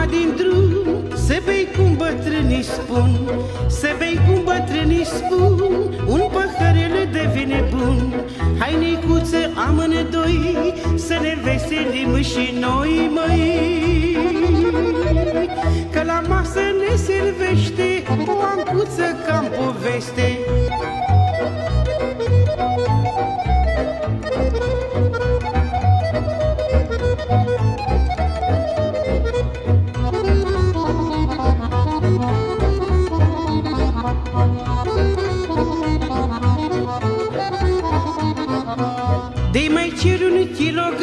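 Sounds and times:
person singing: 0.0s - 21.4s, 36.7s - 41.0s
accordion melody: 0.0s - 41.0s
fiddle playing: 0.0s - 41.0s
pulsing bass and rhythm: 20.5s - 40.8s.

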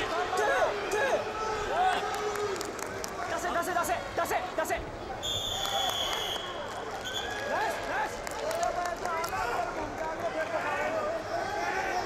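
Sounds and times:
arena crowd voices: 0.0s - 12.0s
high-pitched whistle blast: 5.2s - 6.5s.

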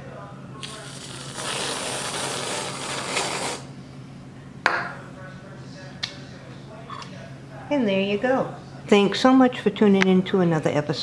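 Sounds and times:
aerosol whipped cream can spraying: 0.6s - 3.7s.

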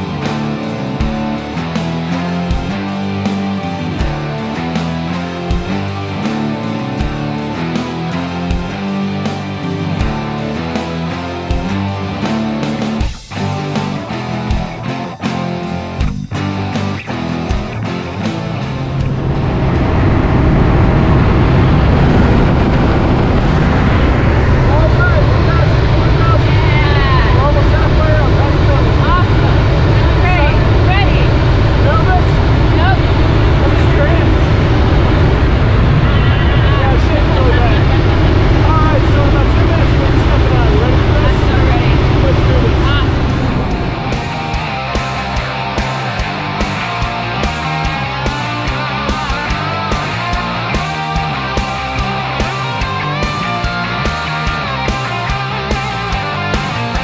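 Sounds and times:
rock music: 0.0s - 57.0s
light aircraft engine drone: 16.6s - 57.0s
voices talking: 24.5s - 46.0s.

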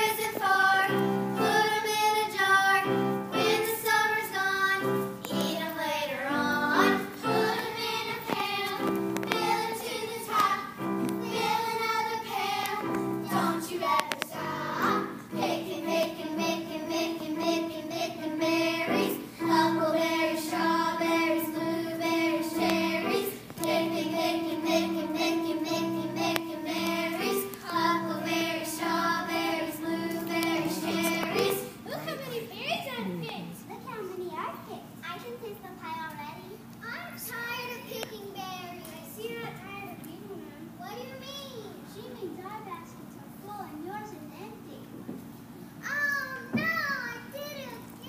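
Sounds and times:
children singing: 0.0s - 31.8s
musical accompaniment: 6.3s - 31.8s.

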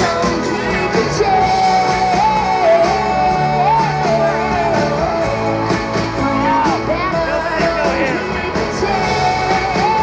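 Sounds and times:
drums: 0.0s - 10.0s
electric guitars: 0.0s - 10.0s
female singer: 0.0s - 10.0s.

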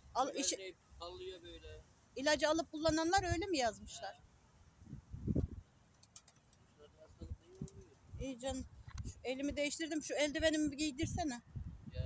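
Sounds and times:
faint clicks: 5.9s - 6.8s, 7.4s - 8.0s.

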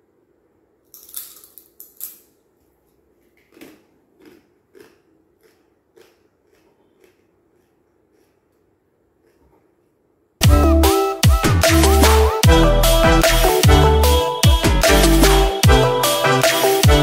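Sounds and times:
person crunching a chip: 0.9s - 9.9s.

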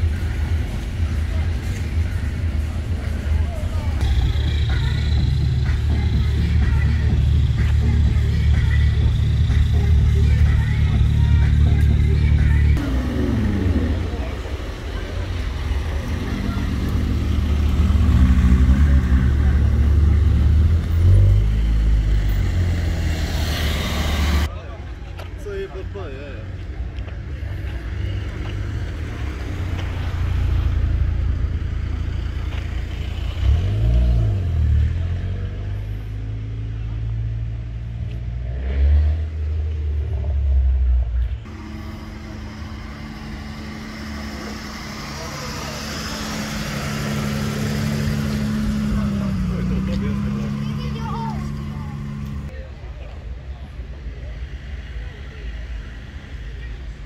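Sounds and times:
car engine revving in blips: 37.4s - 52.5s.

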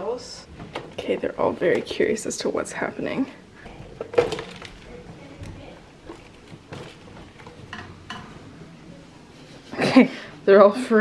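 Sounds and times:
rats scrambling and rustling: 3.6s - 8.5s.

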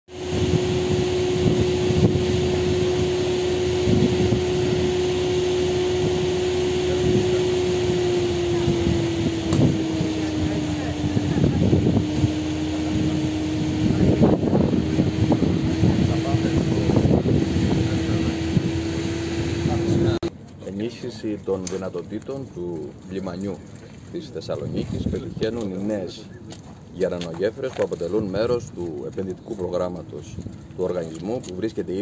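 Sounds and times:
low rumbles: 0.1s - 20.3s
steady machine hum: 0.1s - 20.3s
faint voices: 6.8s - 18.6s.

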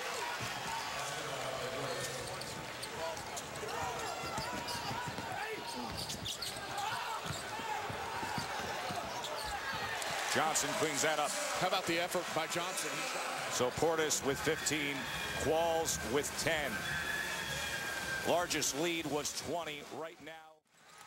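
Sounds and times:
arena crowd noise: 0.0s - 21.0s
basketball dribbling: 2.3s - 10.2s.

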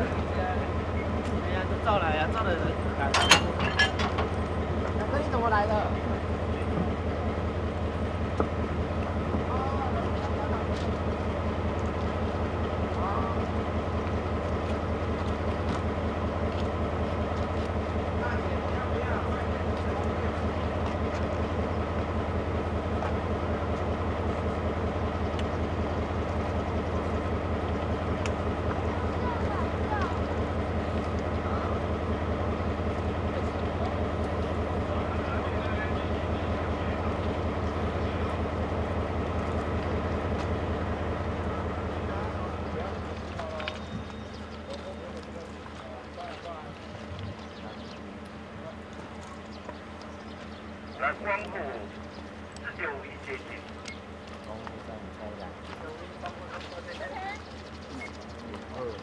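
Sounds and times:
locomotive engine idling: 0.0s - 59.0s
faint voices: 28.5s - 38.8s, 41.4s - 59.0s.

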